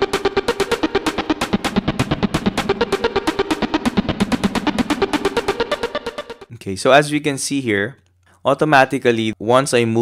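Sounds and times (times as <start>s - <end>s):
arpeggiated synthesizer: 0.0s - 6.5s
drum loop: 0.0s - 6.5s.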